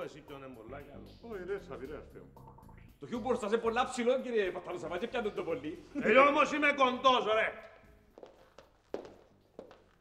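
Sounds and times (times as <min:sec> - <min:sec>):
footsteps on wooden floor: 0:07.8 - 0:10.0.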